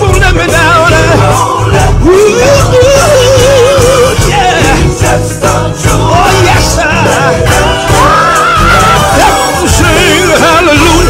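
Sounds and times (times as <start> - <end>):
backing music with bass: 0.0 - 11.0
gospel singing with vibrato: 0.0 - 11.0.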